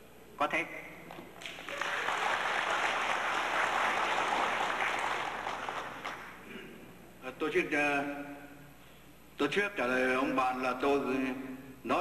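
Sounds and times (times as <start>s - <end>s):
audience applauding: 1.4s - 6.4s.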